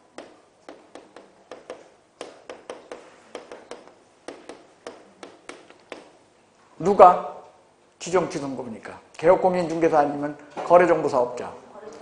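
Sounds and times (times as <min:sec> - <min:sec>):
chalk tapping on chalkboard: 0:00.0 - 0:06.2.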